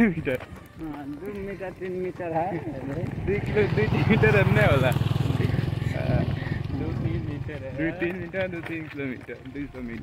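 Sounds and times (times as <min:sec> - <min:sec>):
man imitating motorcycle engine: 0:04.0 - 0:07.2.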